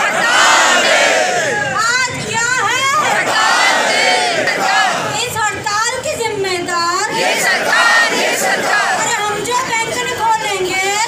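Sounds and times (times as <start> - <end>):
crowd shouting slogans: 0.0 - 5.4, 7.1 - 9.4
woman shouting into microphone: 1.4 - 3.2, 9.0 - 11.0.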